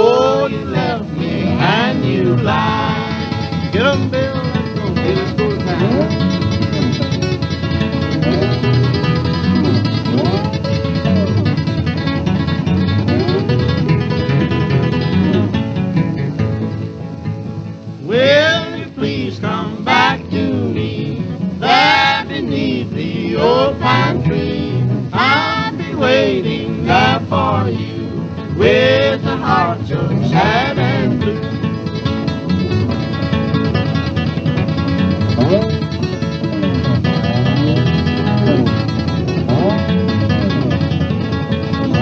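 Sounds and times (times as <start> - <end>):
person singing: 0.0 - 6.0, 18.0 - 31.5
slide guitar: 0.0 - 42.0.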